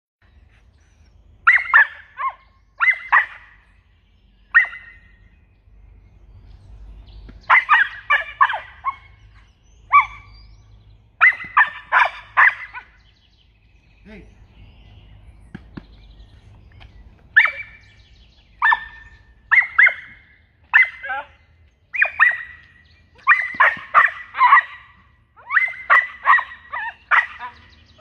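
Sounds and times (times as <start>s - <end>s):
puppy barking in high-pitched yaps: 1.4s - 3.6s, 4.5s - 5.1s, 7.4s - 10.3s, 11.2s - 13.0s, 17.4s - 17.8s, 18.6s - 28.0s.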